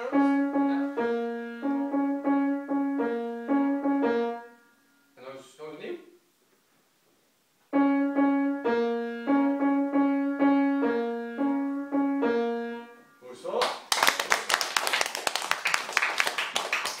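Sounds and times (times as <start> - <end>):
child playing piano tune: 0.0 - 4.7, 7.7 - 13.2
audience applause: 13.9 - 17.0.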